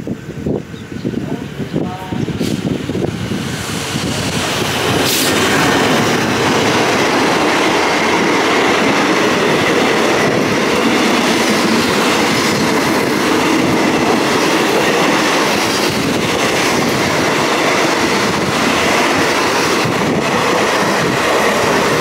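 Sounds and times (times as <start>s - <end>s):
train wheels rumbling on rails: 0.0s - 22.0s
train clatter: 1.2s - 22.0s.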